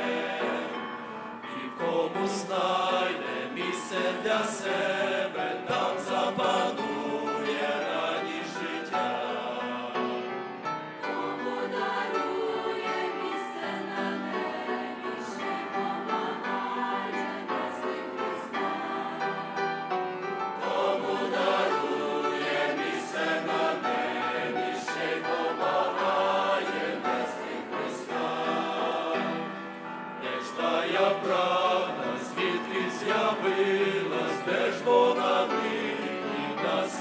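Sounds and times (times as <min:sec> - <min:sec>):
mixed choir singing a hymn: 0:00.0 - 0:37.0.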